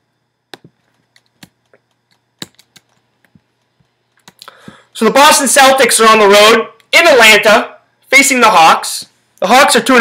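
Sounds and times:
computer keys clicking: 0.5 - 3.4, 4.1 - 4.5.

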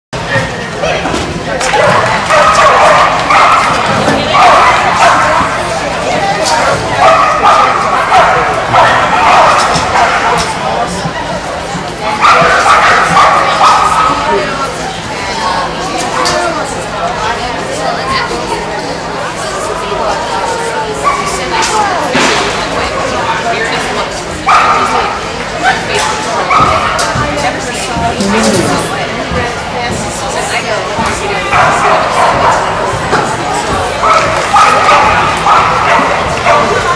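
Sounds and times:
dog barking: 1.8 - 5.6, 7.0 - 10.4, 12.2 - 14.2, 34.0 - 36.9
woman calling commands: 28.2 - 29.0.

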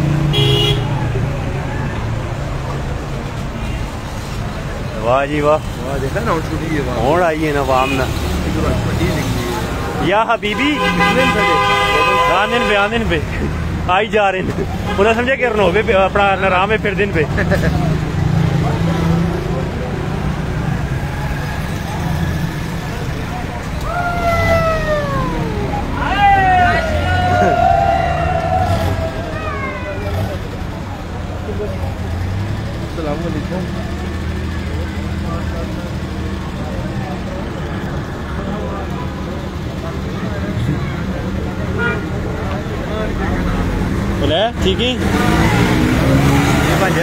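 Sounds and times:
street traffic rumble: 0.0 - 47.0
swooping siren-like tones: 24.2 - 29.4.

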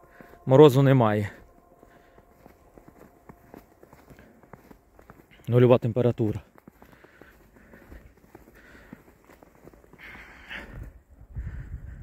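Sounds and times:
footsteps in snow: 0.0 - 11.1.

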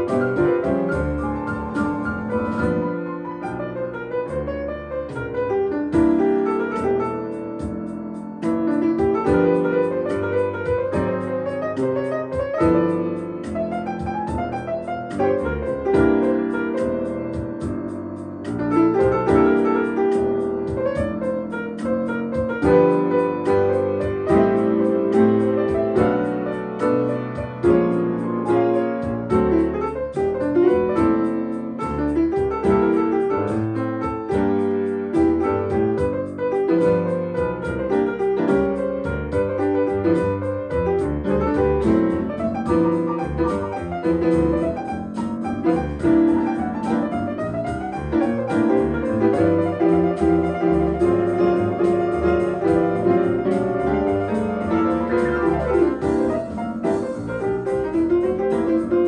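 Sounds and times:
player piano playing: 0.0 - 59.0.

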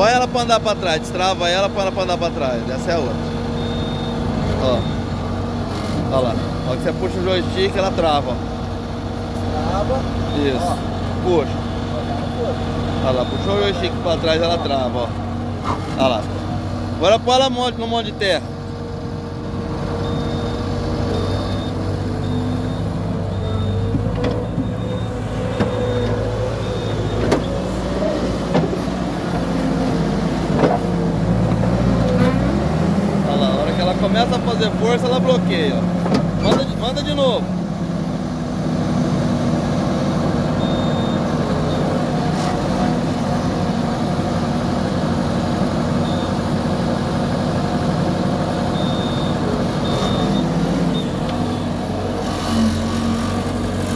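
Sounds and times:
diesel engine idling: 0.0 - 53.9
high-pitched beep: 3.6 - 5.1, 20.0 - 23.9.

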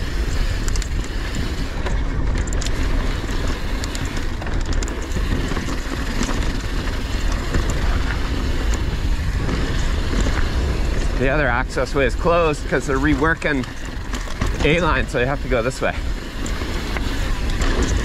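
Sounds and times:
bike clicks and rattles: 0.0 - 18.0
bike tyres rumbling on dirt: 0.0 - 18.0
wind rush on microphone: 0.0 - 18.0.

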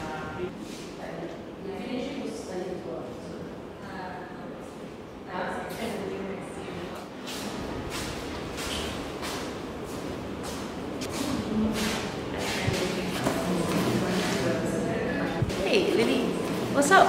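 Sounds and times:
murmur of people talking: 11.0 - 17.0.

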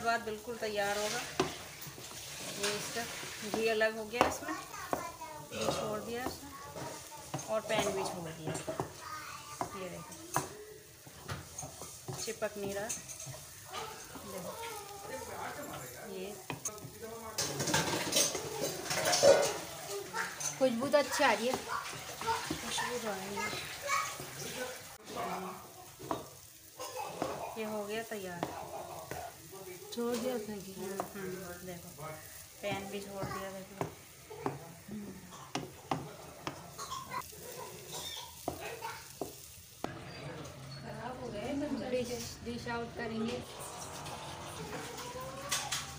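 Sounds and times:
low sizzle of frying: 0.0 - 45.9
spatula scraping in a pan: 0.0 - 45.9
spatula knocking against pan: 35.5 - 36.7.

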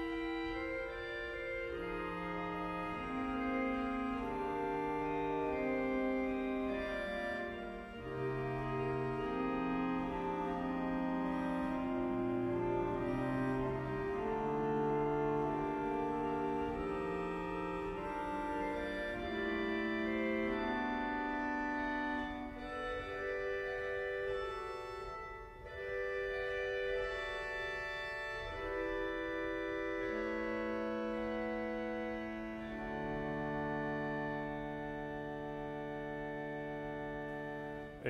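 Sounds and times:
pipe organ chords: 0.0 - 38.0.

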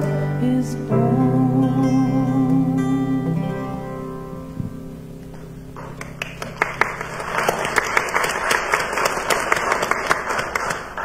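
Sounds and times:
crowd applauding: 5.8 - 11.0.

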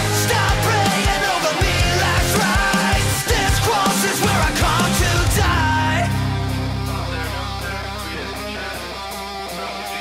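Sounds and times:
hard rock guitar music: 0.0 - 10.0.

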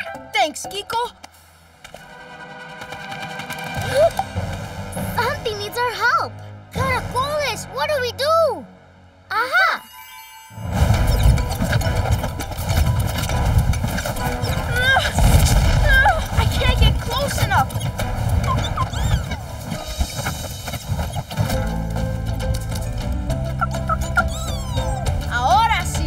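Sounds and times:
cartoon action music: 2.0 - 8.6, 9.3 - 26.0
wordless cries and effort sounds: 3.6 - 10.1, 10.7 - 26.0
low rumbling effect: 10.6 - 26.0.

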